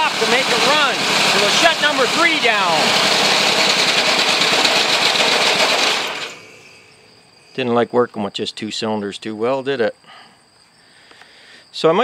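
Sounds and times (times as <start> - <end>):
small engine firing pulses: 0.0 - 6.7.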